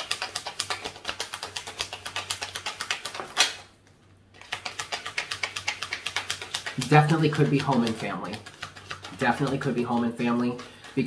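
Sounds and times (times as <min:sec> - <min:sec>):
cards being shuffled: 0:00.0 - 0:03.6, 0:04.4 - 0:11.0.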